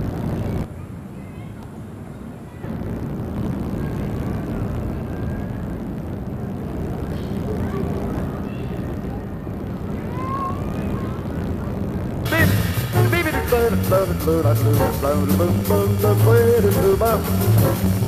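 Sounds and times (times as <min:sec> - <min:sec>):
low outdoor rumble: 0:00.0 - 0:18.0.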